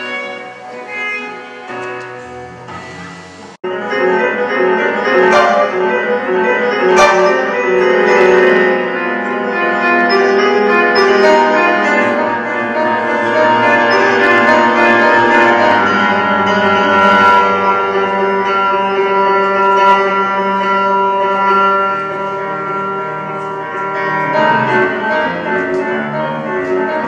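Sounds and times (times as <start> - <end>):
grand piano playing: 0.0 - 27.0.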